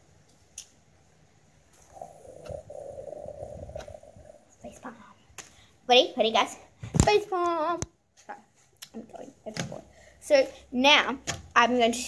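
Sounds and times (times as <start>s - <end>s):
rubbing against microphone: 1.8s - 5.0s.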